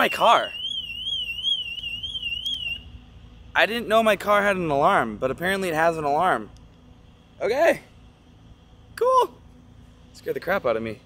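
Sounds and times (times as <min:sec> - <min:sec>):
car alarm warbling: 0:00.0 - 0:02.9.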